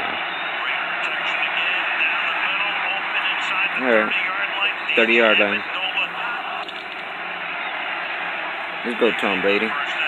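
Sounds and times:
crowd noise: 0.0 - 10.0
commentator speaking: 0.6 - 6.7, 8.8 - 10.0.

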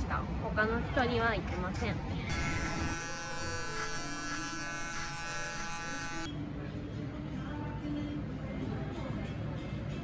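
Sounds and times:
electric hair clippers buzzing: 2.3 - 6.3.

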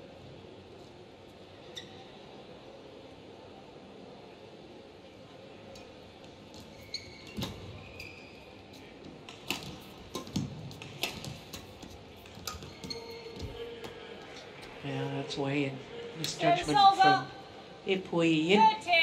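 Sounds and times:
shoe squeaks on court: 1.7 - 2.1, 6.6 - 8.8, 12.3 - 13.6
racket hitting shuttlecock: 9.3 - 14.0.

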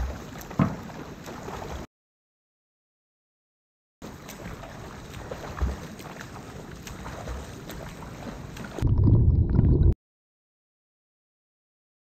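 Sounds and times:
water splashing from swimming strokes: 0.0 - 1.9, 4.0 - 9.8
water thuds against microphone: 0.0 - 1.9, 4.0 - 6.2.

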